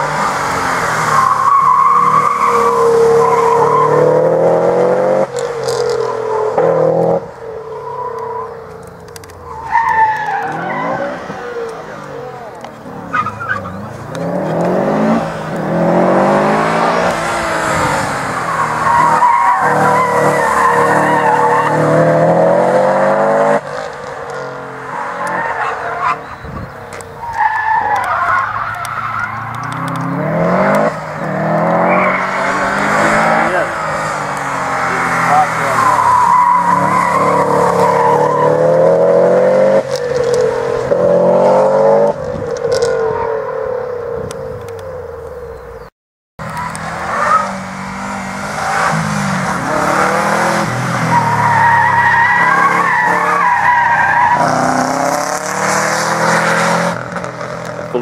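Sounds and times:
car engine revving hard: 0.0 - 7.3, 10.8 - 23.6, 29.6 - 42.2, 46.7 - 58.0
tyres squealing: 7.6 - 15.6, 17.0 - 22.1, 23.6 - 38.8, 46.4 - 56.1.

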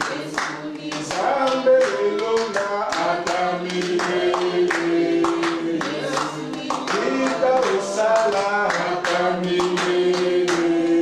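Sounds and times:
congregation singing: 0.0 - 11.0
rhythmic hand clapping: 0.0 - 11.0.

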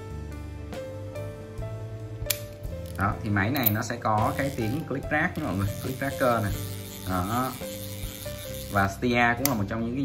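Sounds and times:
background music held notes: 0.0 - 10.0
sharp click: 2.3 - 2.6.

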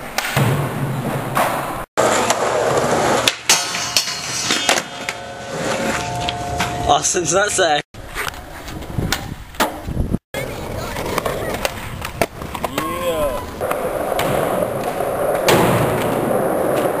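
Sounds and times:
skateboard wheels rolling: 0.0 - 6.8, 8.0 - 17.0
skateboard clacking on concrete: 10.4 - 17.0.

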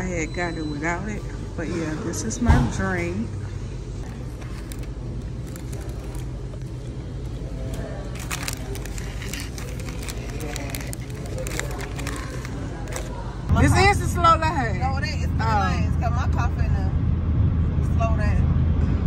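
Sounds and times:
background chatter: 0.0 - 16.9
low hum: 2.8 - 19.0.

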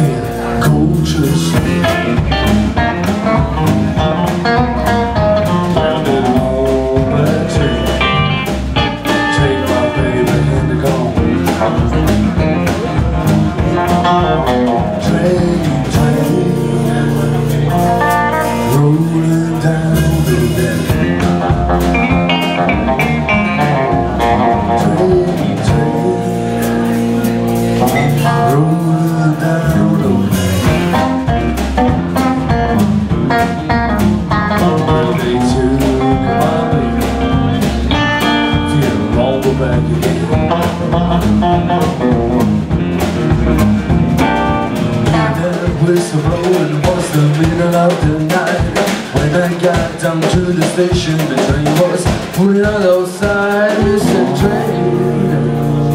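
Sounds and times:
drums: 0.0 - 55.9
electric guitars: 0.0 - 55.9.

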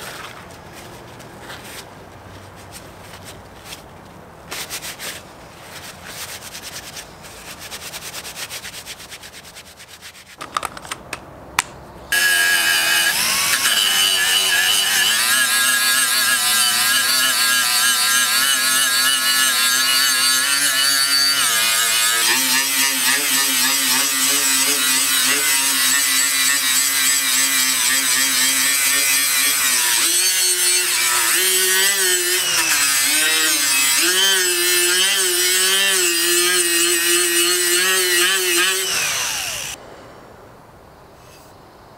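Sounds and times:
rubbing and handling noises: 0.0 - 11.2
handheld power tool whining: 12.1 - 39.8.

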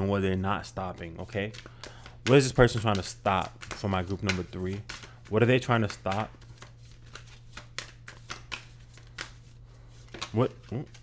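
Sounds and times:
cards being shuffled: 0.8 - 11.0.

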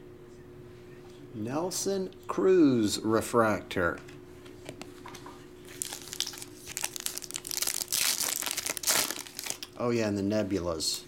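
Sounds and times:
foil wrapper tearing and crinkling: 5.7 - 9.8.

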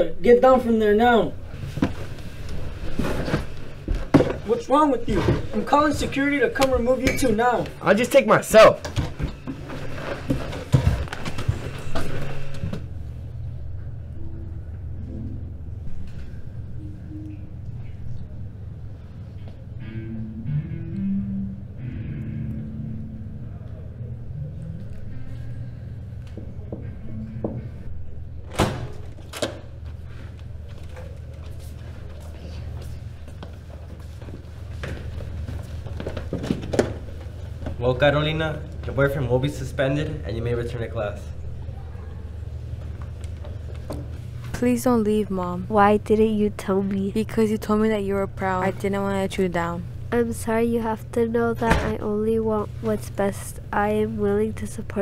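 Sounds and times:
steady low hum: 0.0 - 55.0
footsteps on classroom floor: 29.8 - 37.8, 42.6 - 44.8.

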